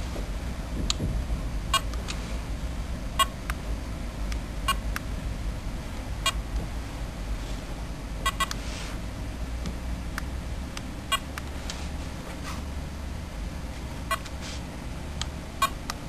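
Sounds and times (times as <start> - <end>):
steady low hum: 0.0 - 16.0
barcode scanner beeps: 8.3 - 8.6, 14.1 - 14.3, 15.6 - 15.8.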